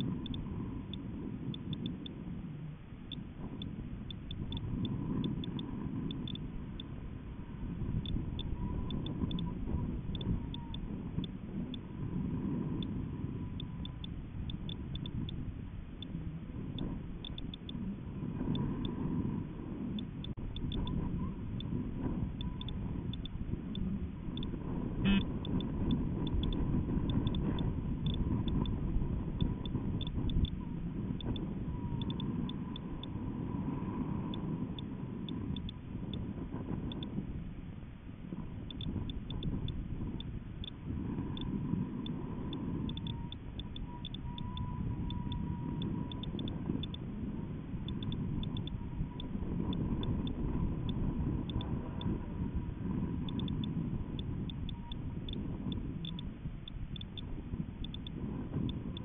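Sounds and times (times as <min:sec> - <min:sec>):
wind buffeting microphone: 0:00.0 - 0:59.0.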